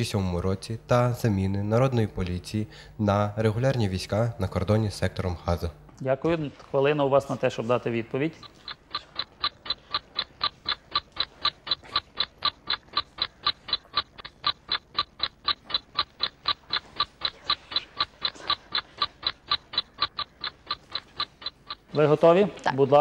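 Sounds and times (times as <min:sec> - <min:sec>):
clock ticking: 0:00.0 - 0:05.9, 0:06.9 - 0:23.0.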